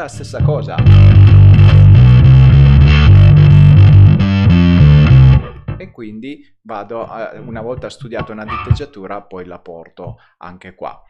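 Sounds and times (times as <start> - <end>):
bass guitar riff: 0.0 - 6.0, 7.4 - 8.9.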